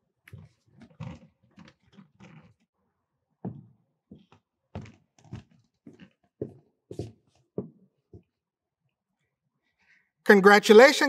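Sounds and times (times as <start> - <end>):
footsteps on hard floor: 3.4 - 8.4.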